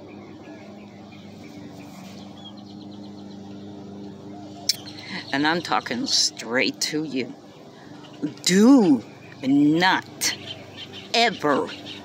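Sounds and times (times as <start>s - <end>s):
lawn mower engine running: 0.0s - 12.0s.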